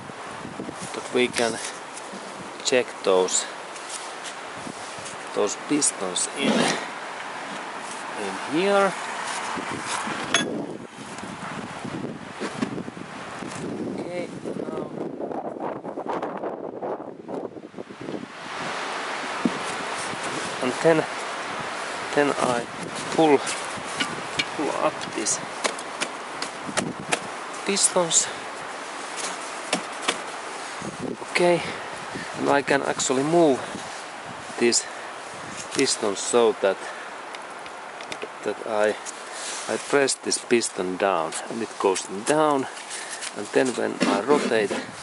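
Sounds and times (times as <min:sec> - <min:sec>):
steady hiss: 0:00.0 - 0:10.3, 0:18.4 - 0:45.0
engine block scraping on wood: 0:06.4 - 0:08.1, 0:43.0 - 0:45.0.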